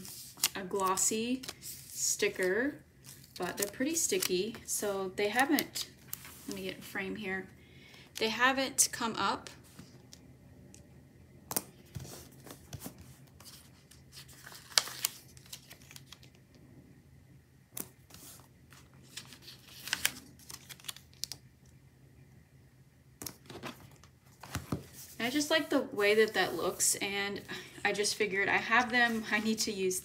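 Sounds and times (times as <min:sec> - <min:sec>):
stickers peeling and crinkling: 0:00.0 - 0:04.7, 0:17.8 - 0:21.5.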